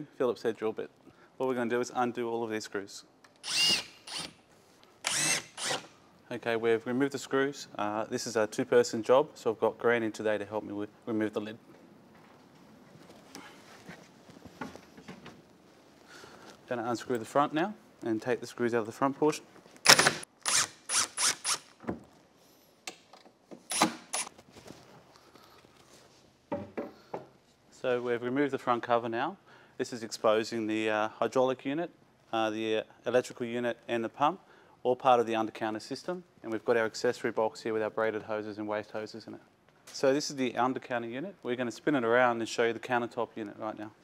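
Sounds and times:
cordless drill motor whine: 3.4s - 4.3s, 5.0s - 5.9s.

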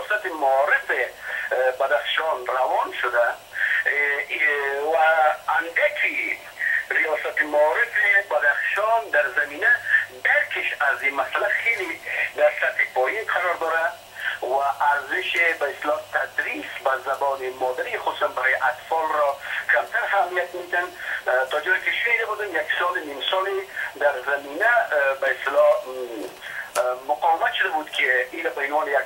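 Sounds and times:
faint low hum: 0.0s - 29.0s
person talking over telephone: 0.0s - 29.0s.

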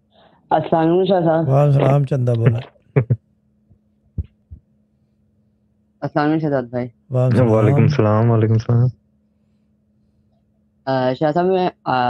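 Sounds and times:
faint steady hum: 0.0s - 12.0s
speech: 0.5s - 3.2s, 6.0s - 8.9s, 10.9s - 12.0s.

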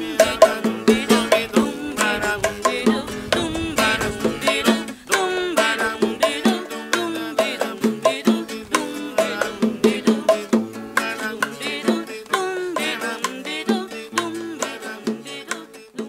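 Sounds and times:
bongos: 0.0s - 16.0s
person singing: 0.0s - 16.0s
strummed acoustic guitar: 0.0s - 16.0s.

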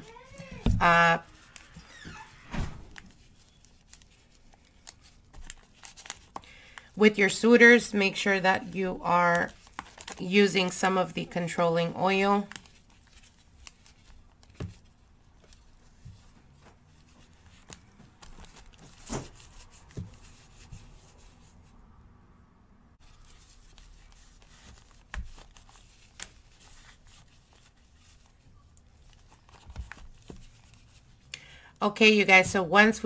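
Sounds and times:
plastic gloves crinkling: 2.9s - 21.2s, 23.0s - 31.3s.

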